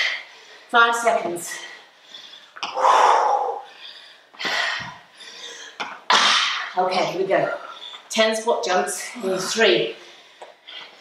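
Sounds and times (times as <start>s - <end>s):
woman exhaling heavily: 2.7s - 3.8s.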